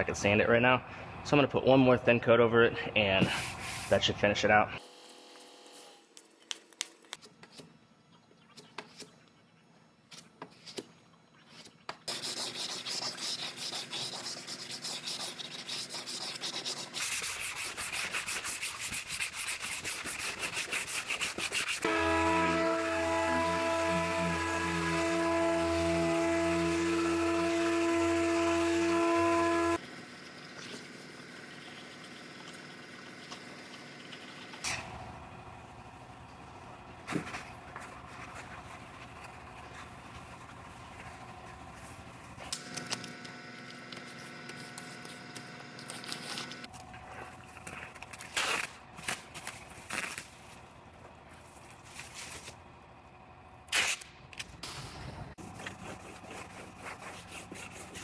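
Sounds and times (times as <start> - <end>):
hand sanding strokes: 3.2 - 4.1, 11.5 - 29.8, 55.4 - 58.0
power sander whining: 21.8 - 29.8.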